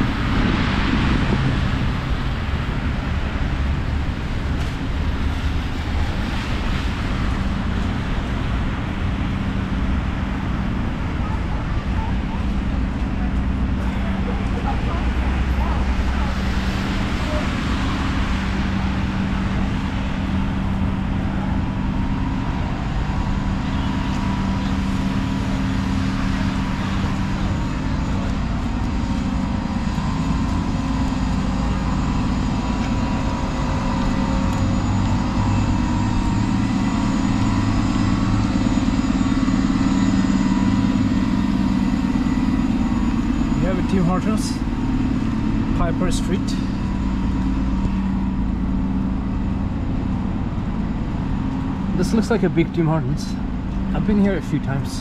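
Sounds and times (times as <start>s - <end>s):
street traffic engine hum: 0.0s - 55.0s.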